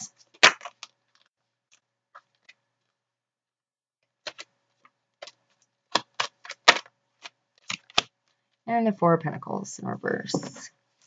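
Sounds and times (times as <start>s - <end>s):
cards clicking and flicking: 0.3s - 1.0s, 5.2s - 8.1s.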